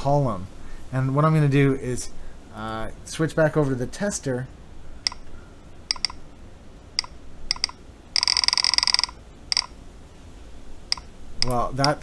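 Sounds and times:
sharp short clicks: 5.0s - 5.3s, 5.9s - 6.2s, 7.0s - 9.8s, 10.9s - 12.0s
dense buzzing rattle: 7.0s - 9.8s.

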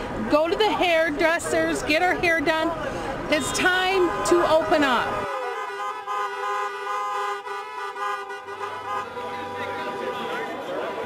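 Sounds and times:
car horn long blast: 5.3s - 11.0s.

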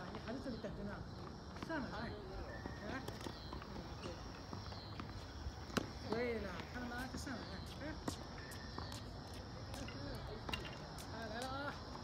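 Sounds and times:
tennis balls hit and bouncing: 3.0s - 6.7s, 7.6s - 11.4s.

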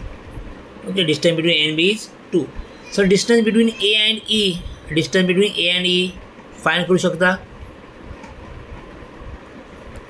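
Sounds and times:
low rumble with hiss: 0.0s - 10.0s.

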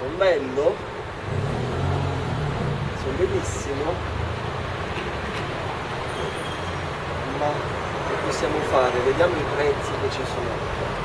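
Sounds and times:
vehicle passing: 1.1s - 8.2s.

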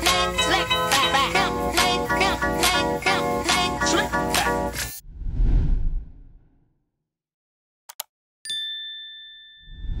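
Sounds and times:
low rumble: 5.0s - 6.6s
two-tone ding: 8.5s - 10.0s.

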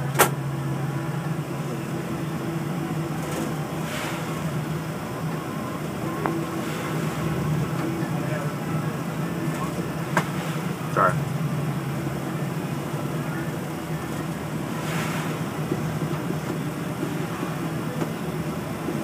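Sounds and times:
ship engine drone: 0.0s - 19.0s.

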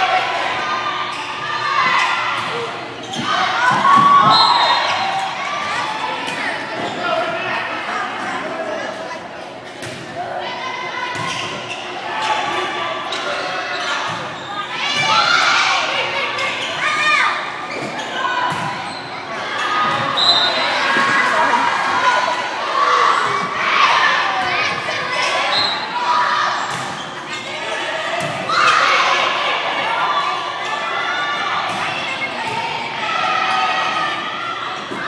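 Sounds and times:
shouts and cheers echoing: 0.0s - 6.3s, 14.6s - 26.7s, 27.4s - 35.0s.

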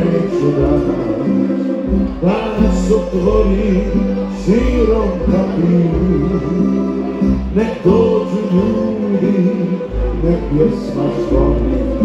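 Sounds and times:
bass: 0.0s - 12.0s
men singing: 0.0s - 12.0s
string ensemble strumming and plucking: 0.0s - 12.0s.

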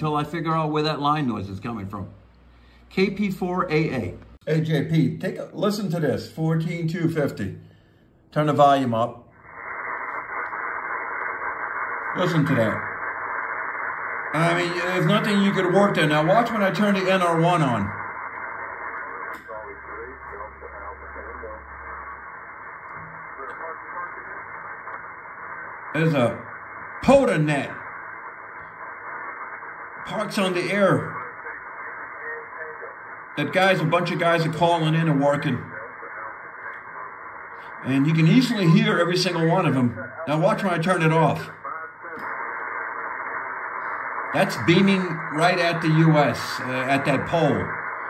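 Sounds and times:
narrow-band radio hiss: 0.0s - 48.0s
faint radio voices: 8.5s - 48.0s.

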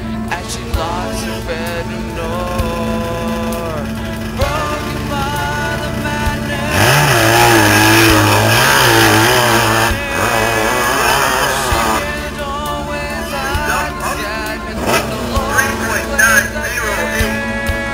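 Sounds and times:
background music: 0.0s - 17.9s
dirt bike engine revving: 0.0s - 17.9s.

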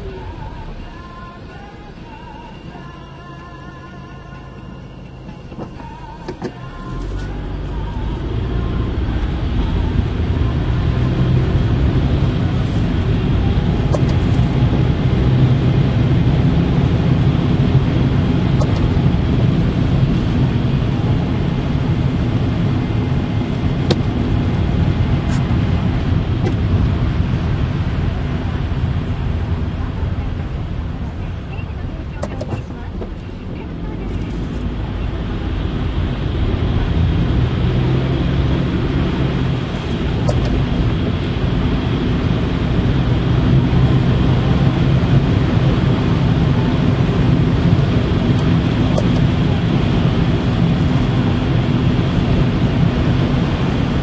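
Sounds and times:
car engine and tyre noise: 0.0s - 54.0s.

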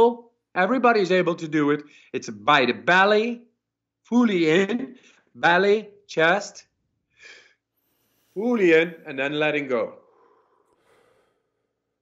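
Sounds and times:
faint breath out: 10.0s - 11.9s.

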